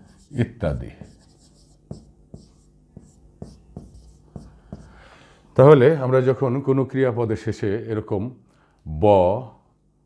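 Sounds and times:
marker writing on whiteboard: 0.0s - 5.0s.

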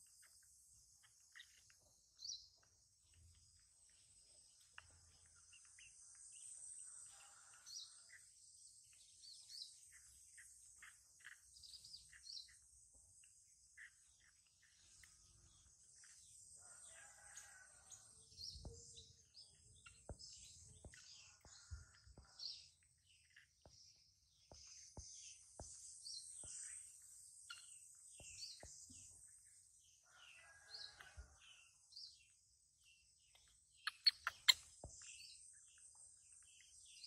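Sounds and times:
small birds chirping: 0.0s - 37.0s.

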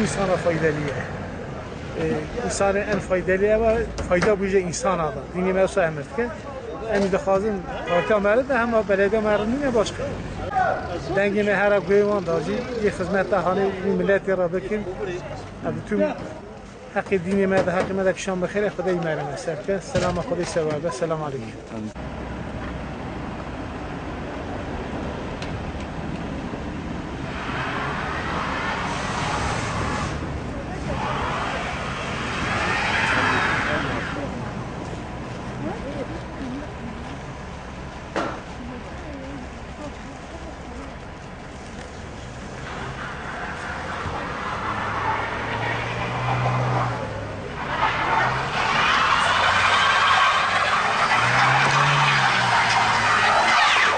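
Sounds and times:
low rumble of engines: 0.0s - 53.9s
tyres rushing with whine: 22.0s - 38.8s, 40.6s - 53.9s
car engine revving: 26.9s - 34.6s, 41.7s - 53.9s.

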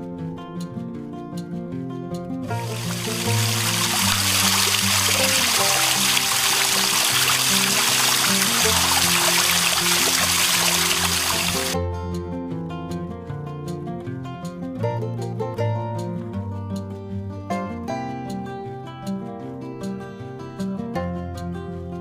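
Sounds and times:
background music: 0.0s - 22.0s
water splashing over stones: 2.5s - 11.8s.

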